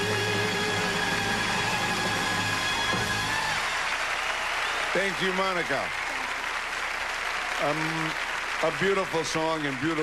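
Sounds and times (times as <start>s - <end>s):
applause: 0.0s - 10.0s.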